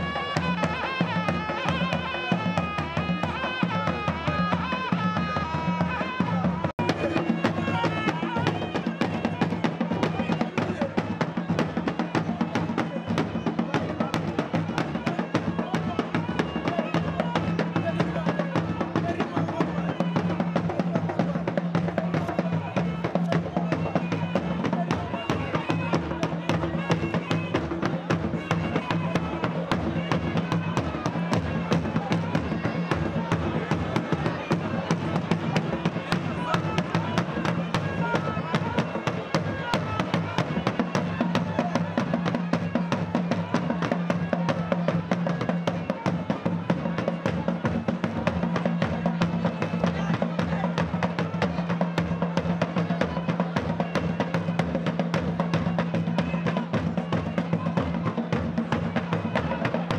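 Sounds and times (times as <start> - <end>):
nasal double-reed shawm melody: 0.0 - 12.0
drum beaten with a stick: 0.0 - 59.9.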